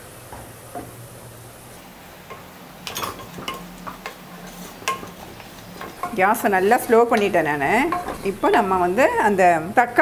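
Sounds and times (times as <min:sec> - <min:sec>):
wooden spatula knocking on metal pot: 0:05.8 - 0:08.8.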